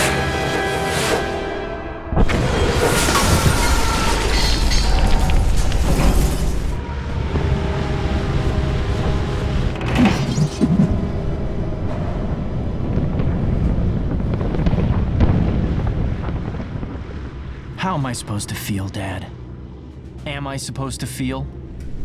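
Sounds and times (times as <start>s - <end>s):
bomber piston engines droning: 6.0s - 14.2s.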